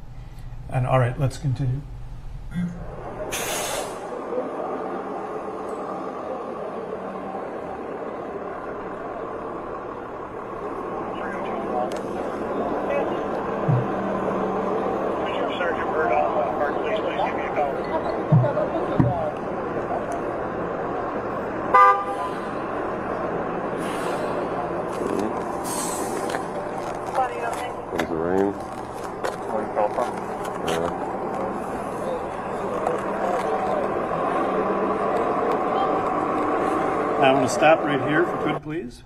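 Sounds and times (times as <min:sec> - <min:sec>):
traffic and street noise: 0:00.0 - 0:39.0
indistinct voices: 0:02.5 - 0:39.0.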